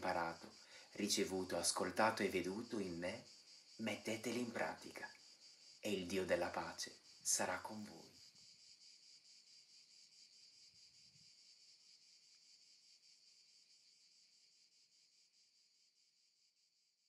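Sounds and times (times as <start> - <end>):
high-pitched insect chirring: 0.0 - 17.0.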